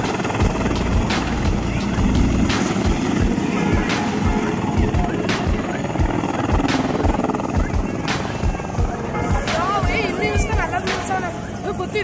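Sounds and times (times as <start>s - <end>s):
helicopter rotor beating: 0.0s - 12.0s
crowd voices: 1.1s - 12.0s.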